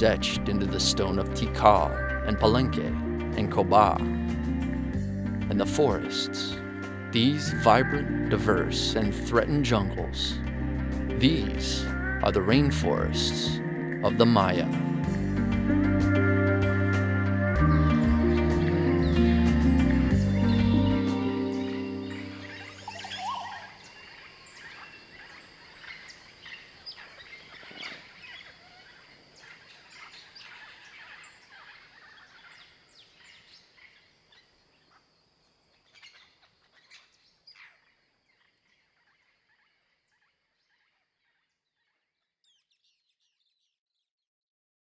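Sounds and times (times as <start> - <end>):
closing music: 0.0 - 23.5
bird calls and chirps: 20.2 - 44.1
high-pitched insect drone: 21.3 - 26.2.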